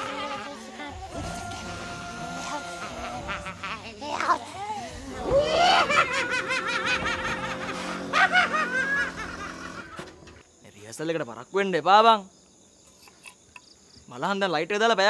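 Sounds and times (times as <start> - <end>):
people shouting and laughing: 0.0 - 9.9
loud drawn-out vocal cries: 0.0 - 10.0
crickets chirping: 0.0 - 15.0.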